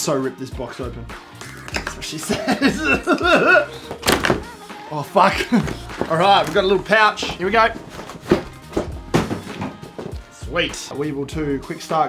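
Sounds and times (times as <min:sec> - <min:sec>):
background music: 0:00.0 - 0:12.0
dull knocks of packaging handled: 0:03.9 - 0:04.5, 0:05.6 - 0:10.2.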